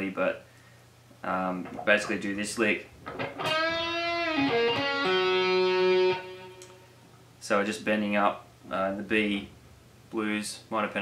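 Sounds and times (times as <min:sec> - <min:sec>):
electric guitar lead lick: 0:03.1 - 0:07.0.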